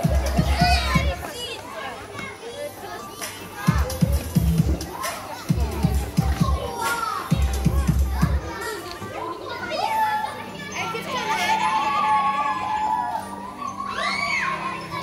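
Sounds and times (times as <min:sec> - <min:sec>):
dance music with bass beat: 0:00.0 - 0:01.1, 0:03.7 - 0:04.9, 0:05.5 - 0:06.7, 0:07.3 - 0:08.4
children calling out and squealing: 0:00.0 - 0:15.0.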